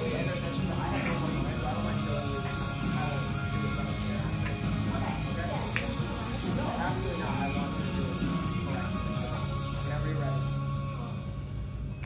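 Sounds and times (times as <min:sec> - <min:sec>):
background music with singing: 0:00.0 - 0:12.0.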